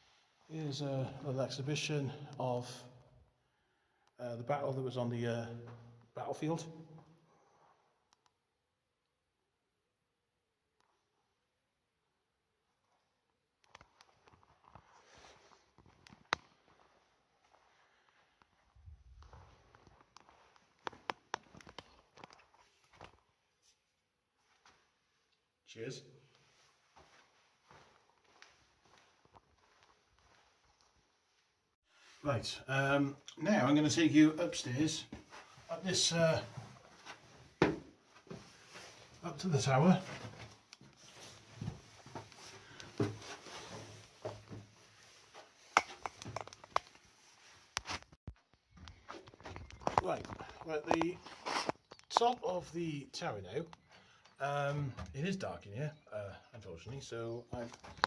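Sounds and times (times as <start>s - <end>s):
faint footsteps: 13.9s - 23.8s, 26.4s - 31.4s, 35.0s - 39.2s, 39.9s - 52.3s.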